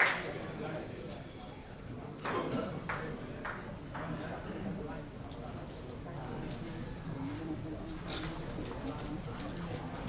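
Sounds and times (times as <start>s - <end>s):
table tennis ball bouncing: 2.2s - 4.2s.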